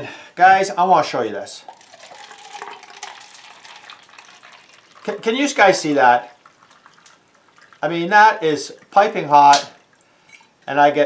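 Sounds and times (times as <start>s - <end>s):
coffee pouring into a cup: 1.6s - 10.5s.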